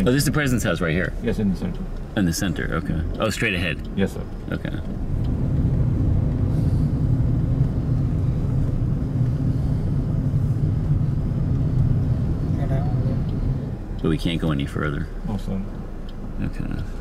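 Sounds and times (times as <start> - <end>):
car engine rumble from inside cabin: 0.0 - 17.0.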